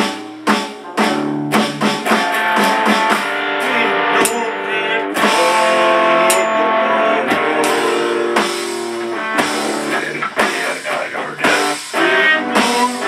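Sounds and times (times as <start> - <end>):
electronic drum hits: 0.0 - 3.4, 5.2 - 12.0
electric guitar chords: 0.0 - 13.0.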